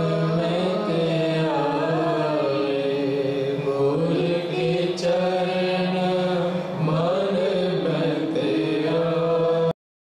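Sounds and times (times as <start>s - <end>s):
harmonium chords: 0.0s - 9.8s
tabla: 0.0s - 9.8s
woman singing a hymn: 0.5s - 2.8s.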